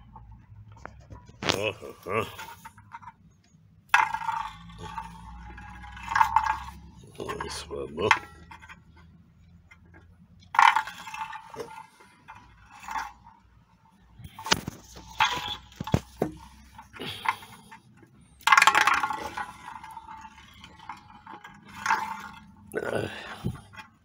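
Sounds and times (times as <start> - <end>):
spinning top clattering in metal pan: 3.9 - 9.1, 10.5 - 17.8, 18.4 - 24.0.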